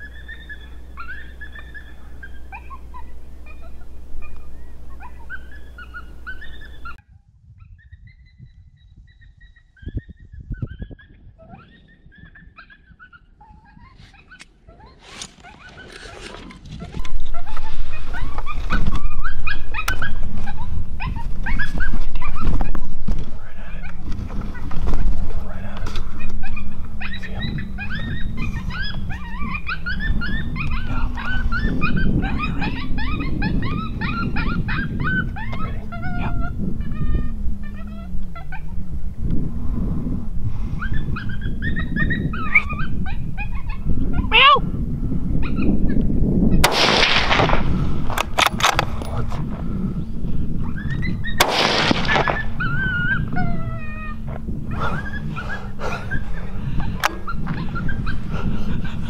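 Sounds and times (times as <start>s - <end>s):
electronic yips and whimpers: 26.2s - 38.8s, 50.6s - 58.2s
sharp cracks: 46.6s - 49.0s, 51.4s - 52.8s.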